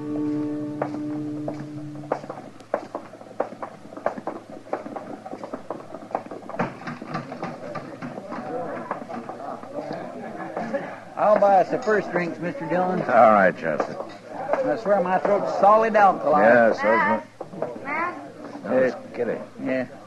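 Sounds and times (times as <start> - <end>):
music bridge: 0.0 - 2.6
sharp knocks of footsteps: 0.0 - 18.6
murmur of crowd: 6.7 - 20.0.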